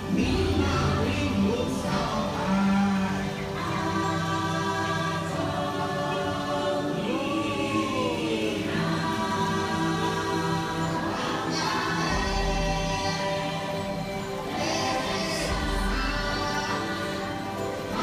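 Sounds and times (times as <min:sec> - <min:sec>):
choral singing: 0:00.0 - 0:18.0
sustained soundtrack music: 0:00.0 - 0:18.0.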